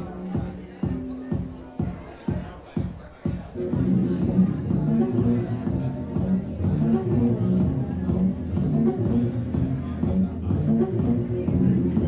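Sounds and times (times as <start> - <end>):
techno bass pattern: 0.0 - 12.0.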